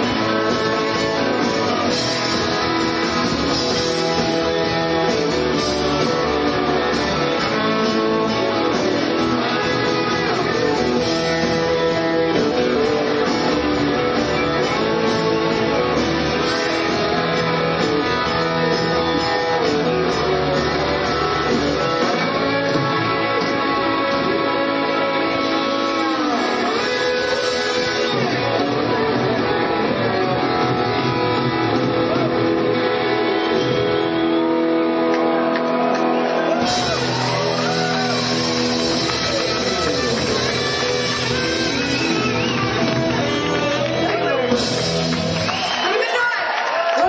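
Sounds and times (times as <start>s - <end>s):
bass line: 0.0s - 45.8s
drums: 0.0s - 47.0s
electric guitars: 0.0s - 47.0s
rock band playing: 0.0s - 47.0s.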